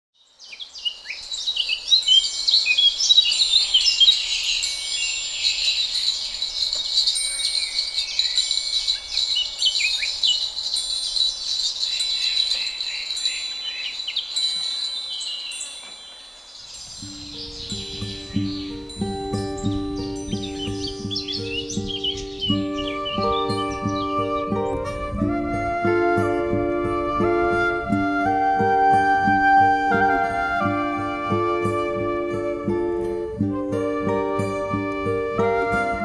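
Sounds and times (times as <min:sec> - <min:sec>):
birdsong chirps and whistles: 0:00.2 - 0:36.0
high ringing tones: 0:01.9 - 0:24.4
low repeated instrument notes: 0:17.0 - 0:36.0.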